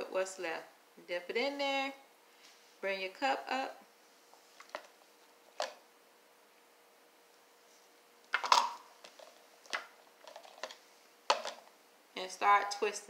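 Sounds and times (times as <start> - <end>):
faint steady hum: 0.0 - 13.0
plastic cups clattering: 8.3 - 11.7.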